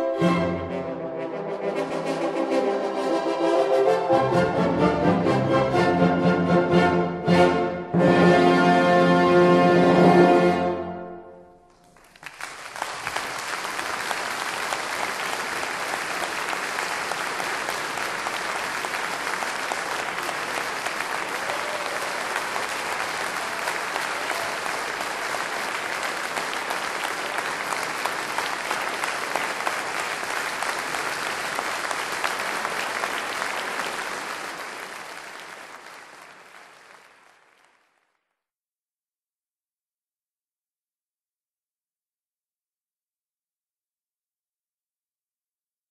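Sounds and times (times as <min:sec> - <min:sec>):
audience applauding: 0:11.7 - 0:38.4.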